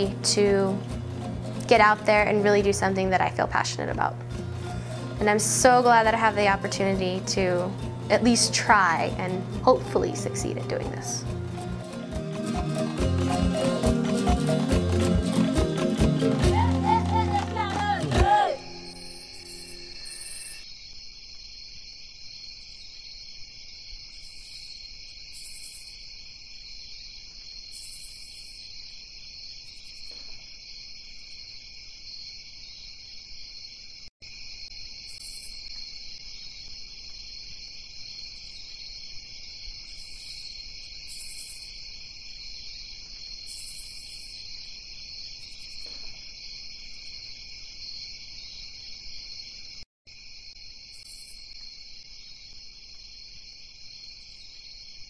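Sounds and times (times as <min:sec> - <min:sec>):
high-pitched insect buzzes: 0:18.5 - 0:20.7
crickets chirping: 0:18.5 - 0:55.0.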